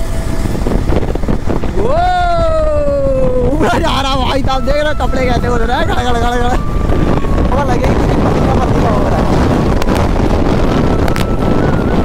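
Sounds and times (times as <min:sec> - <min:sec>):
wind buffeting on microphone: 0:00.0 - 0:12.0.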